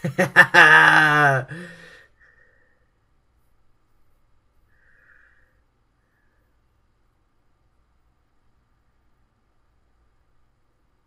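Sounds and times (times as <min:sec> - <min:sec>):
man laughing: 0:00.0 - 0:02.0.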